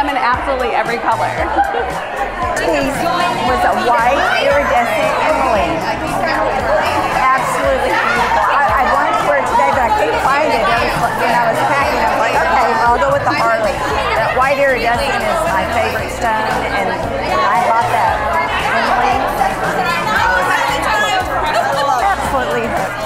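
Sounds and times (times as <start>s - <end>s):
woman talking: 0.0s - 1.5s, 2.6s - 23.0s
background music: 0.0s - 23.0s
people chattering: 0.0s - 23.0s.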